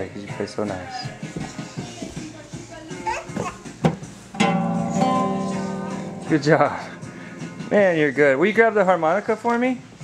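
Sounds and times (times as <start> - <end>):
small child babbling: 2.9 - 3.7
classical guitar strummed: 4.3 - 6.5.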